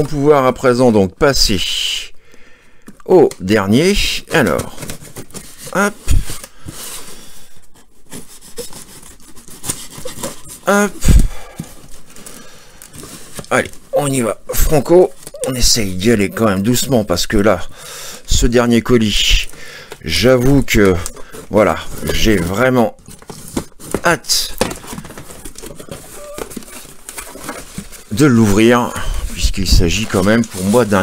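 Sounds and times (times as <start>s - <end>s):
bubble wrap rustling and crinkling: 3.2s - 31.0s
cardboard tearing: 4.4s - 17.2s, 19.4s - 31.0s.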